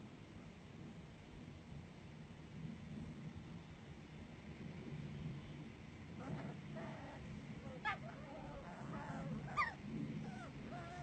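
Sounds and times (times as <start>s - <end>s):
faint animal calls: 6.2s - 11.0s.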